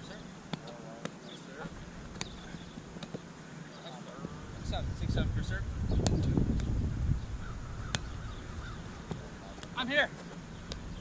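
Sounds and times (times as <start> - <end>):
faint voices: 0.0 - 6.4
rubber ball slapping: 0.5 - 1.2, 2.1 - 3.3, 7.9 - 8.1, 9.0 - 9.8.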